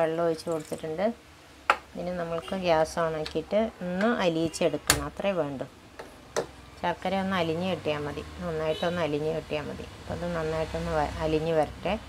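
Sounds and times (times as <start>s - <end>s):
woman speaking: 0.0s - 1.2s, 1.9s - 5.7s, 6.8s - 12.0s.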